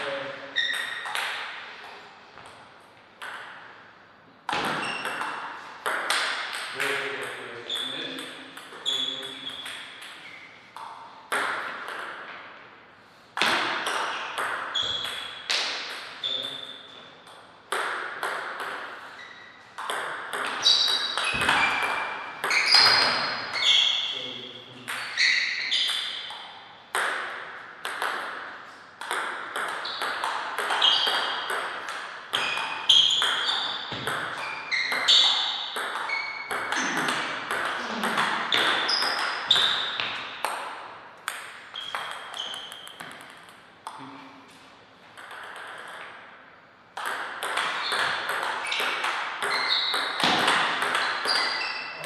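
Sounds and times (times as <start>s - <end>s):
ping pong ball hits: 0.0s - 2.6s, 3.2s - 3.9s, 4.5s - 12.5s, 13.4s - 19.2s, 19.8s - 24.1s, 24.8s - 44.3s, 45.2s - 52.0s.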